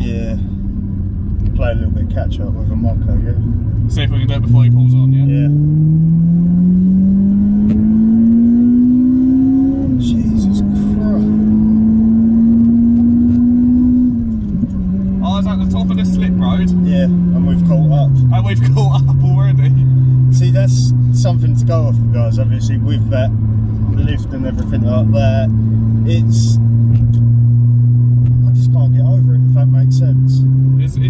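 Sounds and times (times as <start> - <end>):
car engine accelerating: 0.0 - 31.0.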